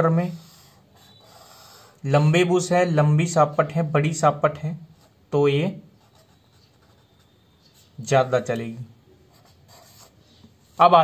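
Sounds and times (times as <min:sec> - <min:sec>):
pen scratching on paper: 0:00.3 - 0:02.0, 0:05.9 - 0:08.0, 0:09.3 - 0:10.8.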